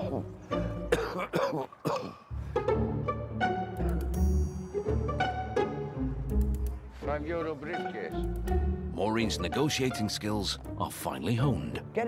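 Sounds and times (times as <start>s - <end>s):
background music: 0.0s - 12.0s
man coughing: 0.9s - 2.3s.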